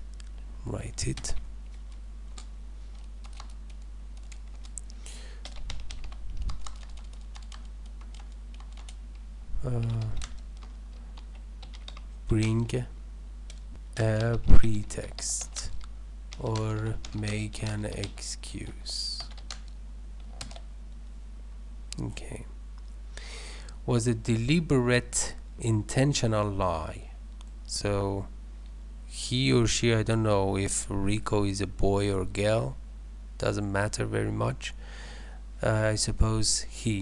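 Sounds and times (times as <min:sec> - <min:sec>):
steady low hum: 0:00.0 - 0:37.0
computer keys clicking: 0:01.1 - 0:12.8, 0:13.5 - 0:18.2, 0:19.2 - 0:20.7.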